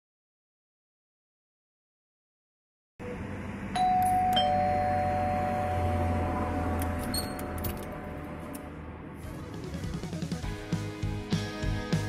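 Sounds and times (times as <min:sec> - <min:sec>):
two-tone doorbell chime: 0:03.8 - 0:08.2.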